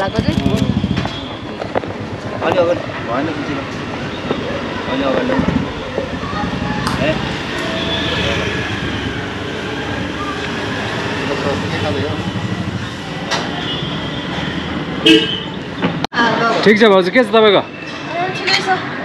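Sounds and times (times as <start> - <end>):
vehicle engine rumbling: 0.0 - 16.1.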